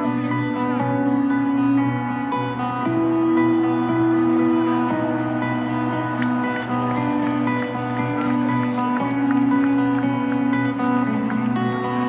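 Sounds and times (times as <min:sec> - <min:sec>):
guitar picking slow notes: 0:00.0 - 0:12.0.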